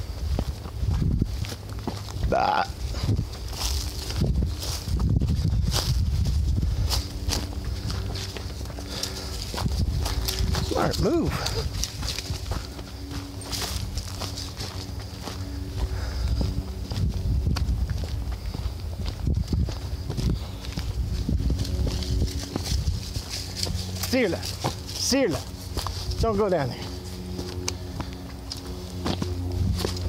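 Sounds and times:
footsteps crunching through leaves: 0:00.0 - 0:30.0
wind rumble: 0:00.0 - 0:30.0.

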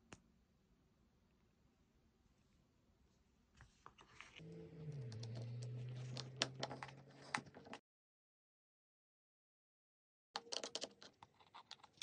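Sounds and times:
steady low hum: 0:04.4 - 0:07.7.

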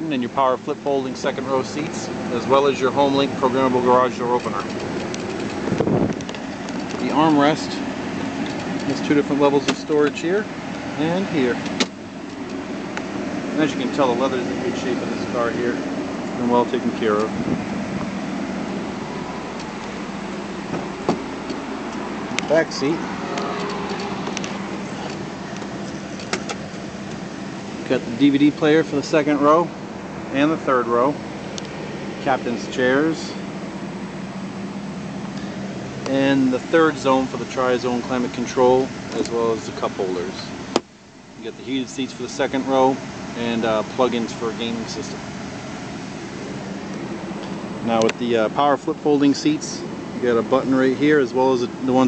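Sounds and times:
car engine idling: 0:00.0 - 0:52.0
climate fan: 0:00.0 - 0:52.0.

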